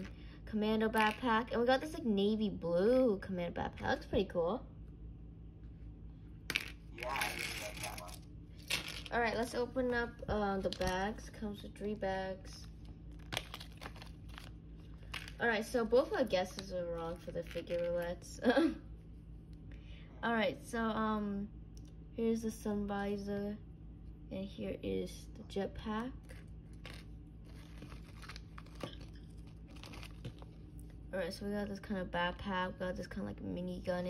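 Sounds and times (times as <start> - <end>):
plastic bag crinkling: 13.1 - 15.4, 26.2 - 30.6.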